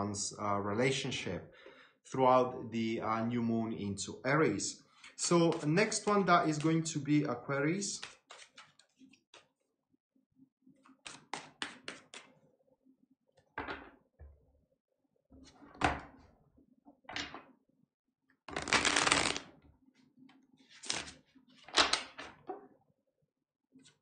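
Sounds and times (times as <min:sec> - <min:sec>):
cards clicking: 0:05.0 - 0:06.9, 0:08.0 - 0:08.9, 0:11.1 - 0:12.3, 0:18.6 - 0:19.4, 0:20.8 - 0:21.1
cards shuffling: 0:05.0 - 0:07.0, 0:08.0 - 0:09.5, 0:10.9 - 0:12.3, 0:18.5 - 0:19.5, 0:20.7 - 0:22.4
card flicks and thumps: 0:05.4 - 0:06.8, 0:11.1 - 0:12.3.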